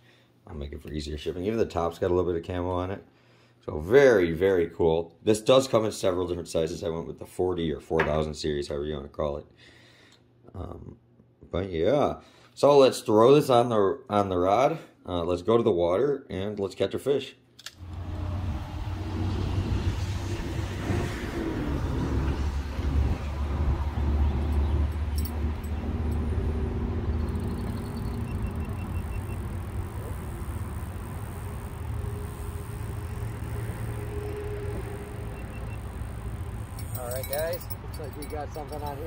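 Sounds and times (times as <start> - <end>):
road traffic: 17.8 - 39.0
deep continuous rumble: 18.0 - 39.0.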